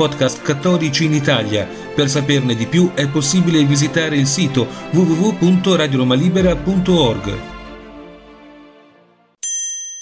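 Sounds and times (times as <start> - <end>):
background music: 0.0 - 9.4
bright bell-like chime: 9.4 - 10.0.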